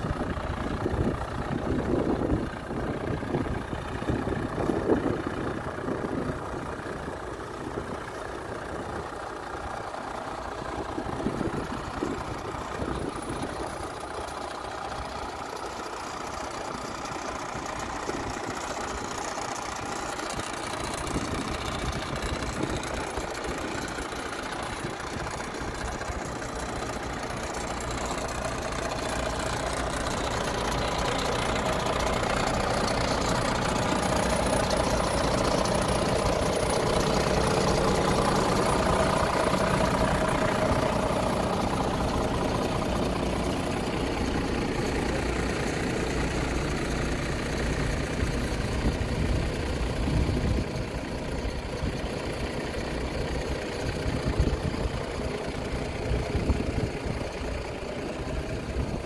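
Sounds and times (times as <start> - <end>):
diesel truck engine idling: 0.0 - 59.0.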